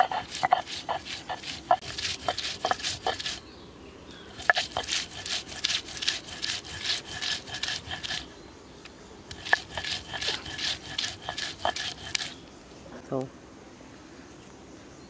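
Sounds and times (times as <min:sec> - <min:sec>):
stone roller scraping on grinding stone: 0:00.0 - 0:03.4, 0:04.3 - 0:08.3, 0:09.3 - 0:12.4.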